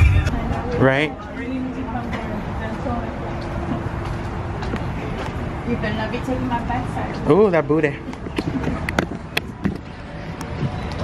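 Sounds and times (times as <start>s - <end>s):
distant traffic hum: 0.0s - 11.0s
footsteps on concrete: 1.9s - 6.0s.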